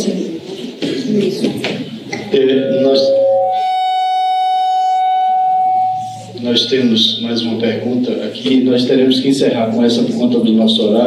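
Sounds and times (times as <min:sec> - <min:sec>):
microphone feedback ringing tone: 0:02.3 - 0:09.1.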